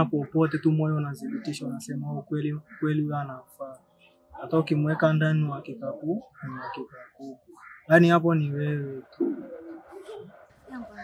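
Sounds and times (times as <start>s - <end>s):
dove cooing: 9.0s - 10.5s.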